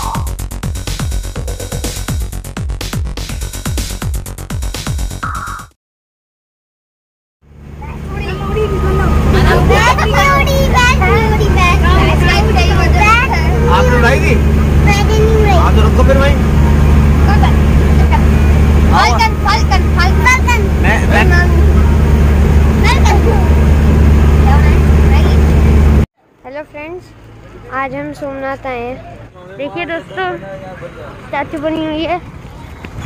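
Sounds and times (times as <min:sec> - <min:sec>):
bus engine droning: 0:07.4 - 0:33.0
child's high voice: 0:07.8 - 0:13.6, 0:14.8 - 0:15.6, 0:18.9 - 0:21.7
people talking: 0:07.8 - 0:16.4, 0:17.2 - 0:22.0, 0:22.8 - 0:23.6, 0:24.4 - 0:25.4, 0:26.5 - 0:32.8.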